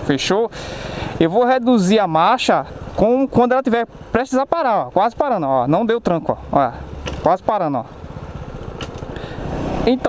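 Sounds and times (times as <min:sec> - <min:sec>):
motorcycle engine running: 0:05.1 - 0:10.0.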